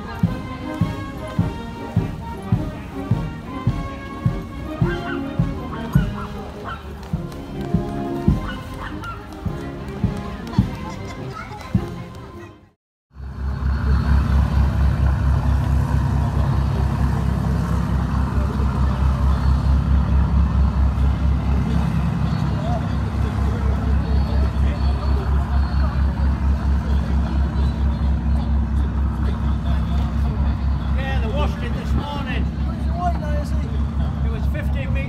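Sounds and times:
engine idling: 13.2 - 35.0.

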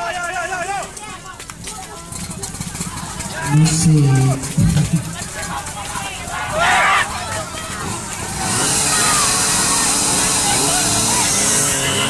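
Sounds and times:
loud crowd shouts: 0.0 - 4.6, 5.2 - 12.0
crowd chatter: 0.0 - 12.0.

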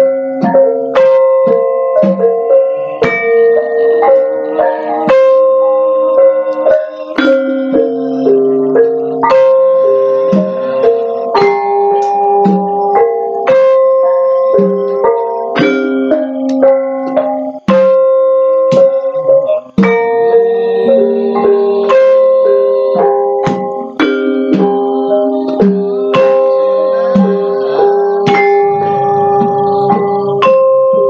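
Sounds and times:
gamelan ensemble playing: 0.0 - 31.0.

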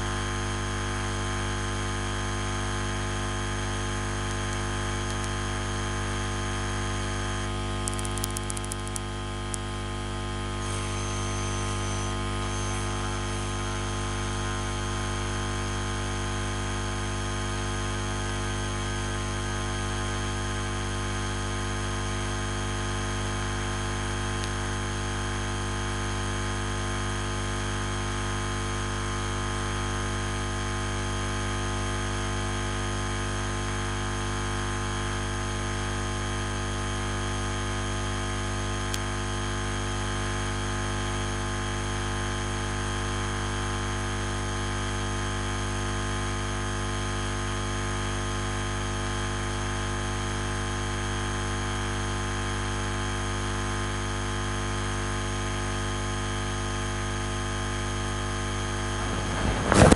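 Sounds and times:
steady hum with hiss: 4.0 - 15.8, 58.3 - 59.9.

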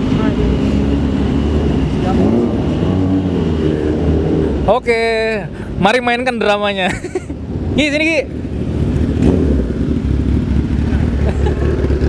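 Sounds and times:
motorcycle engine at low revs: 8.3 - 12.0.

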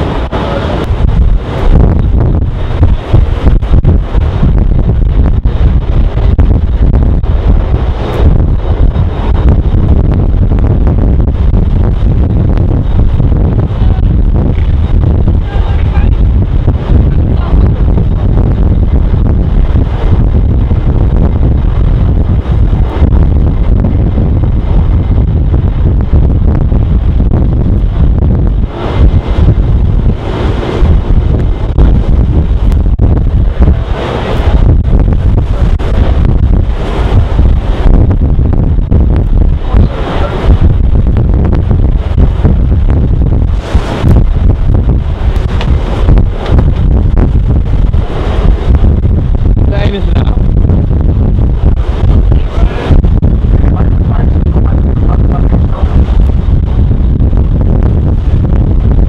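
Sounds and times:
wind buffeting microphone: 0.0 - 59.0.

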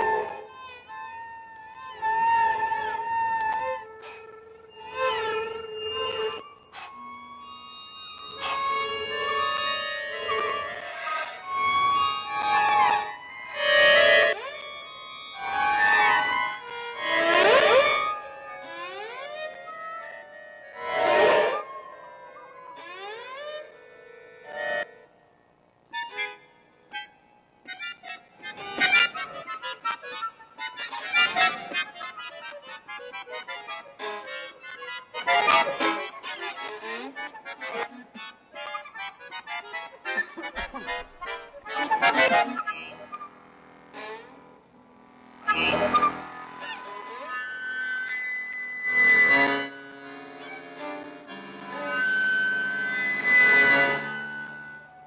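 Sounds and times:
flute: 0.0 - 23.8, 40.1 - 43.4, 45.4 - 50.0, 51.6 - 55.0
violin: 0.0 - 25.0, 25.9 - 55.0
button accordion: 0.0 - 25.2, 25.9 - 55.0.

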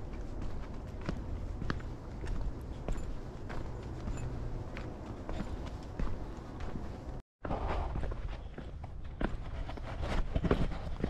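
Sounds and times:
steady low rumble: 0.0 - 8.3
footsteps on gravel: 0.0 - 11.0.

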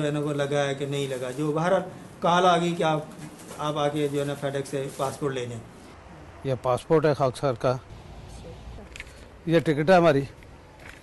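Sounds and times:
man speaking: 0.0 - 5.7.

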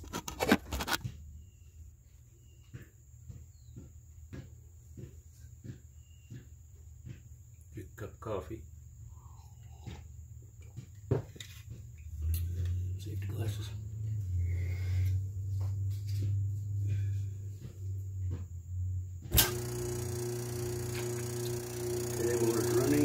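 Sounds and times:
motor humming: 19.2 - 23.0
loud click: 19.3 - 19.8.

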